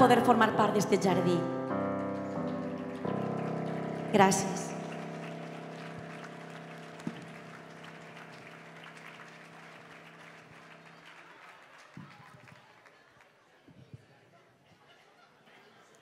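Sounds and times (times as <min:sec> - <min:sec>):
digital piano chord: 0:00.0 - 0:11.1
faint clapping: 0:01.7 - 0:13.9.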